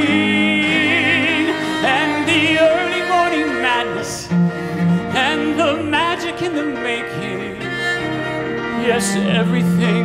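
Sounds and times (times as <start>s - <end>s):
bowed cello: 0.0s - 10.0s
piano accompaniment: 0.0s - 10.0s.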